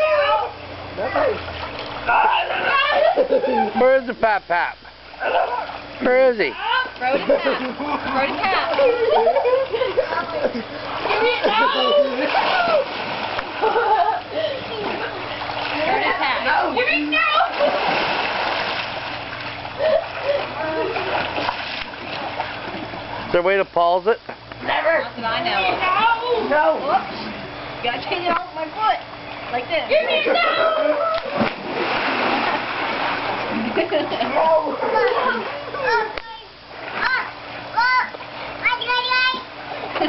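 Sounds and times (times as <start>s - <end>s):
pool water splashing: 0.0s - 40.0s
water splashing: 10.7s - 23.3s, 30.4s - 35.8s.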